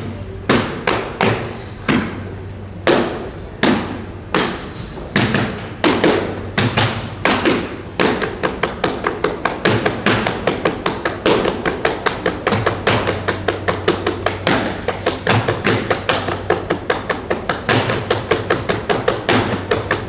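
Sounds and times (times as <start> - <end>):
dance foot taps and thumps: 2.8 - 20.0.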